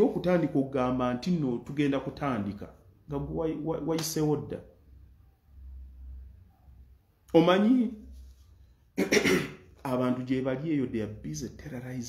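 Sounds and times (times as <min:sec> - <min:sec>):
man speaking: 0:00.0 - 0:04.7, 0:07.3 - 0:08.1, 0:09.8 - 0:12.0
man coughing: 0:09.0 - 0:09.7.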